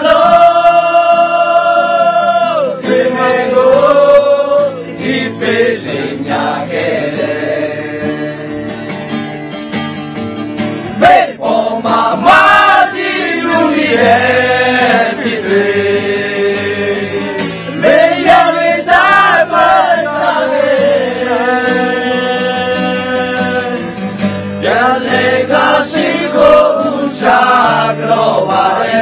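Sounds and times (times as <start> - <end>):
men singing in chorus: 0.0 - 8.5, 11.0 - 24.0, 24.6 - 29.0.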